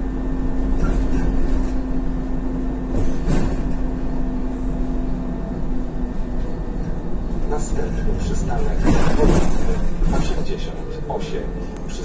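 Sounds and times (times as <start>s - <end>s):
bus engine drone: 0.0s - 12.0s
road rumble: 0.0s - 12.0s.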